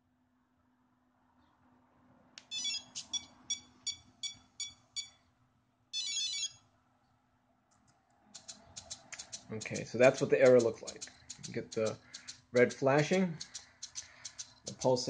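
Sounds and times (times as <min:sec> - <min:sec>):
light clicks: 0:10.5 - 0:12.4, 0:13.3 - 0:15.0.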